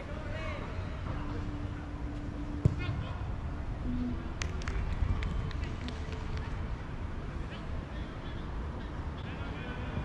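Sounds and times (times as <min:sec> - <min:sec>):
steady low rumble: 0:00.8 - 0:08.4.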